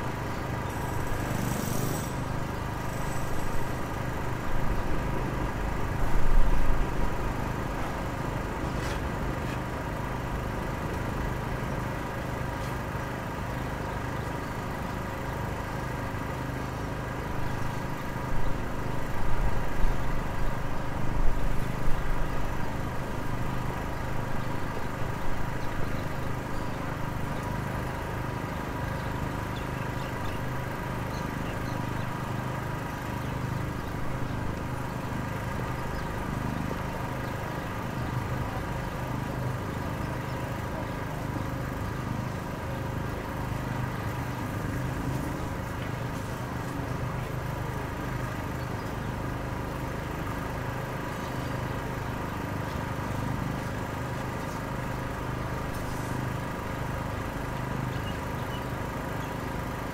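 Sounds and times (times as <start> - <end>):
machinery engine running: 0.0 - 59.9.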